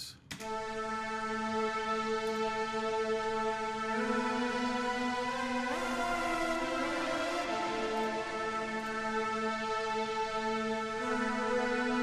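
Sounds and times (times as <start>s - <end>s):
synth string chords: 0.4s - 12.0s.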